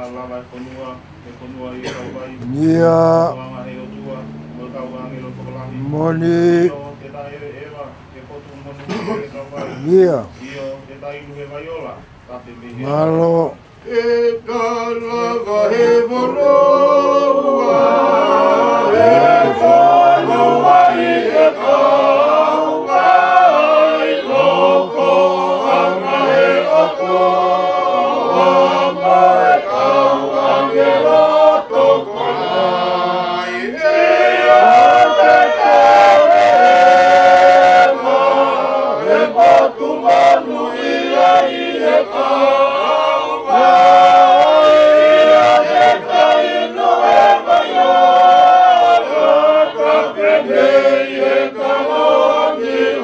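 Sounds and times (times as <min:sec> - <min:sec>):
group singing a hymn: 0:00.0 - 0:10.8, 0:12.8 - 0:53.0.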